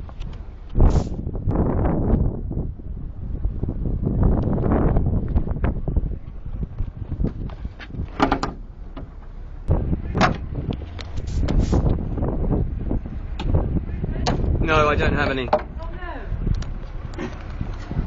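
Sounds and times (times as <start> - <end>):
wind buffeting microphone: 0.0 - 18.0
sharp clicks and knocks: 7.3 - 9.3
door banging shut: 8.1 - 9.1, 10.1 - 10.5.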